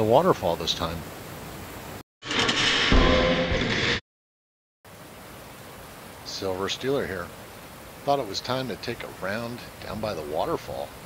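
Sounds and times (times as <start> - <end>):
low hit: 2.3 - 4.0.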